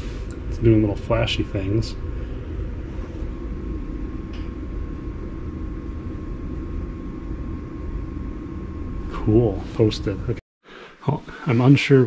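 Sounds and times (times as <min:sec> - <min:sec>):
computer fan whirring: 0:00.0 - 0:10.4.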